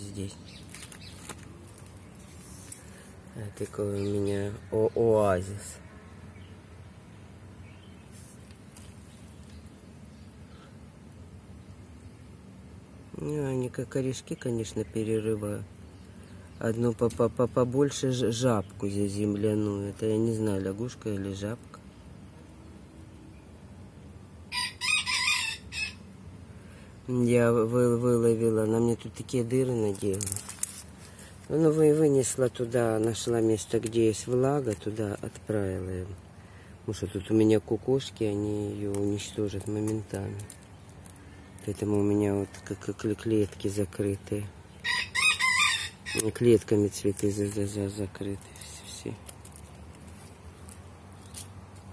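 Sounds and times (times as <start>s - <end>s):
rooster crowing: 24.5s - 26.1s, 44.8s - 46.2s.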